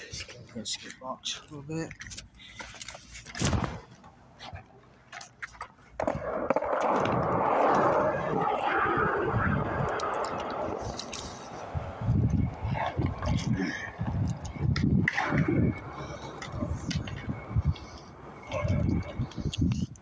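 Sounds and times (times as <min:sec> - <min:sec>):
skateboard wheels rolling on concrete: 0:02.7 - 0:20.0.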